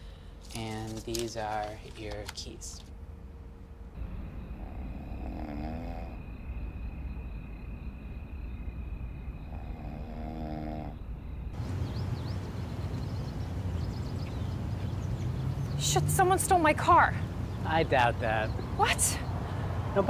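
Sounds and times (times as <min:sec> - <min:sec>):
low outdoor rumble: 0:00.0 - 0:20.0
person snoring: 0:04.6 - 0:06.2, 0:09.5 - 0:11.0.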